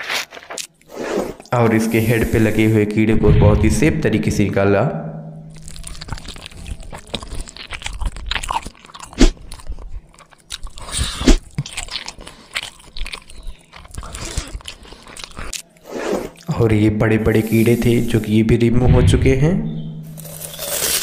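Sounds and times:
dry crackly crunches: 0.0s - 0.8s, 5.6s - 16.5s, 20.2s - 21.0s.

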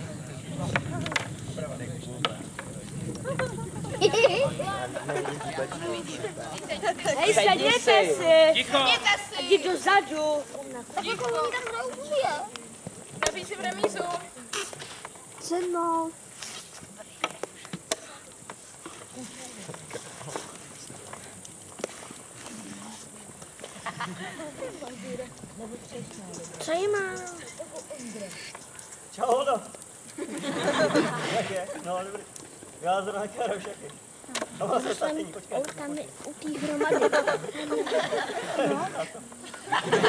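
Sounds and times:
faint voices: 0.0s - 39.8s.

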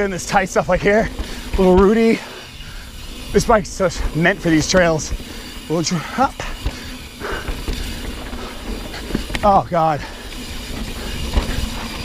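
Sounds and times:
bike tyres rolling over dirt: 0.0s - 12.0s.

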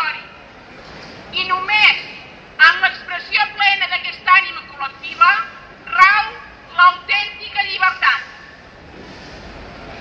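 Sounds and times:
low street background noise: 0.0s - 10.0s
voice through a megaphone: 1.4s - 8.5s.

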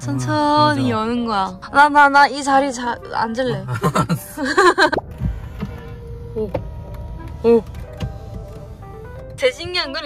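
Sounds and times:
power seat motor humming: 4.7s - 10.0s.

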